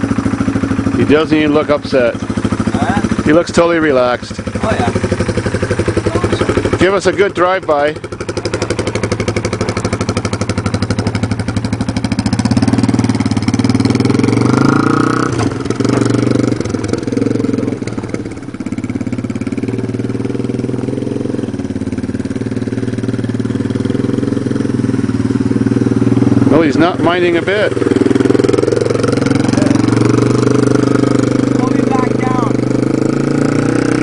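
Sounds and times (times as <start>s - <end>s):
dirt bike engine passing by: 0.0s - 34.0s.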